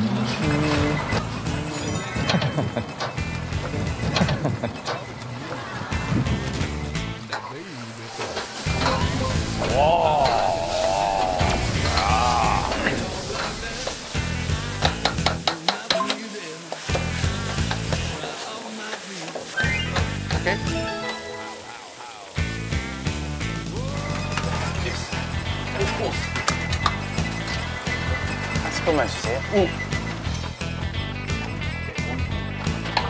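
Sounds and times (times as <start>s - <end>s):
background music: 0.0s - 18.5s, 19.6s - 33.0s
food sizzling in a wok: 5.5s - 31.8s.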